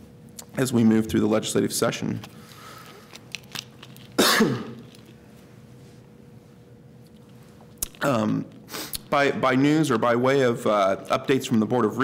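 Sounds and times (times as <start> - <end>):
man coughing: 4.2 - 4.8.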